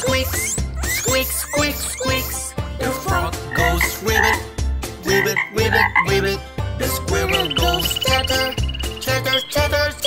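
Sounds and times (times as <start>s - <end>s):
children's song backing music: 0.0s - 10.0s
frog croaks: 3.5s - 6.3s.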